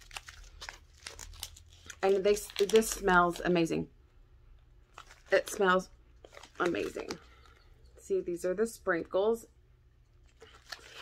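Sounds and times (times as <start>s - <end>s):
plastic pouch crinkling: 0.0s - 3.5s, 4.8s - 7.6s, 10.2s - 11.0s.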